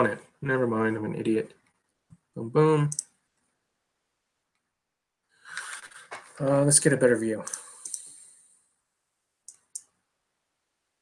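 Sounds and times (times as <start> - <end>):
computer mouse clicks: 2.9 - 3.2, 7.5 - 8.2, 9.5 - 10.0.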